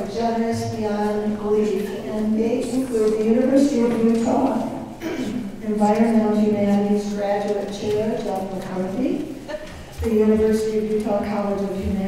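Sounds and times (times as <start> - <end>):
woman talking into a microphone: 0.0 - 12.0.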